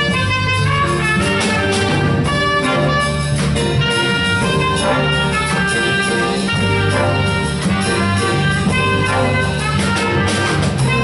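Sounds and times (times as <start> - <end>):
jazz big band playing: 0.0 - 11.0.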